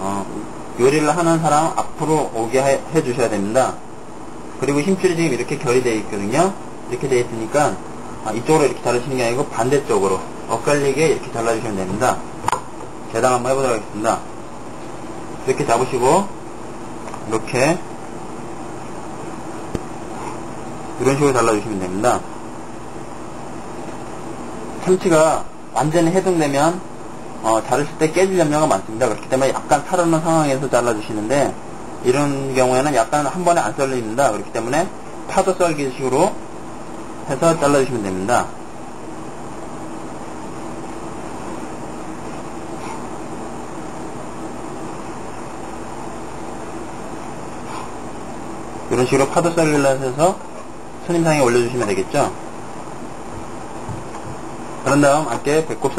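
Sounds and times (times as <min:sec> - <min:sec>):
background hiss and hum: 0:00.0 - 0:55.9.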